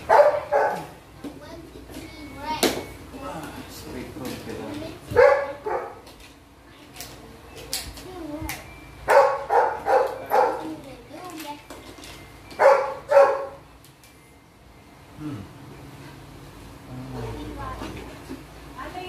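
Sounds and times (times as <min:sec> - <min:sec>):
dog barking: 0:00.0 - 0:01.0, 0:05.1 - 0:06.0, 0:09.1 - 0:10.7, 0:12.6 - 0:13.6.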